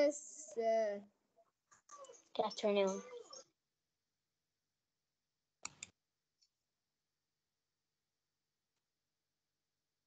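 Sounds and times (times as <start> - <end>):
computer mouse clicks: 5.6 - 6.0.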